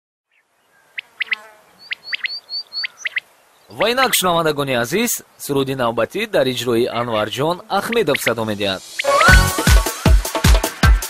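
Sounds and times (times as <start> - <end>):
small songbird chirping: 0.3 - 4.5, 6.9 - 9.4
faint hiss: 0.5 - 9.3.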